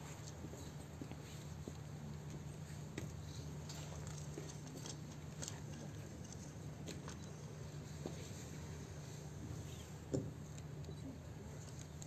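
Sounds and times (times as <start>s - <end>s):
low outdoor hum: 0.0s - 12.0s.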